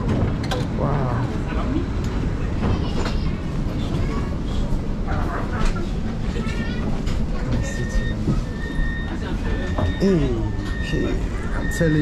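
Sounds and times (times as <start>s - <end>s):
tram rumbling: 0.0s - 12.0s
faint voices: 0.7s - 12.0s.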